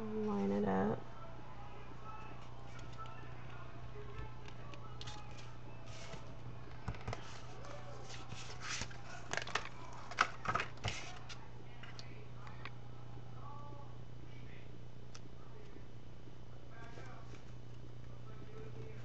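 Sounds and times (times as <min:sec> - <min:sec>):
steady low hum: 0:00.0 - 0:19.0
paper crackling: 0:04.2 - 0:12.0
paper rustling: 0:04.9 - 0:12.0.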